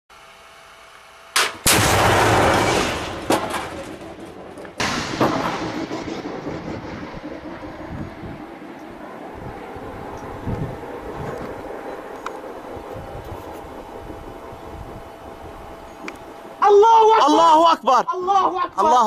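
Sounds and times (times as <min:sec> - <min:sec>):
heavy weapons fire bangs: 0:01.4 - 0:09.7
rumbling echo: 0:01.7 - 0:16.6.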